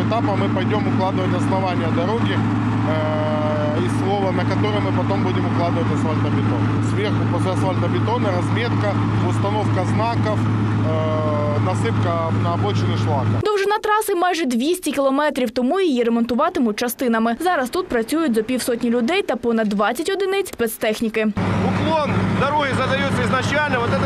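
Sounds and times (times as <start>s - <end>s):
man talking: 0.0s - 13.4s, 21.6s - 24.0s
low engine drone: 0.0s - 13.5s, 21.4s - 24.0s.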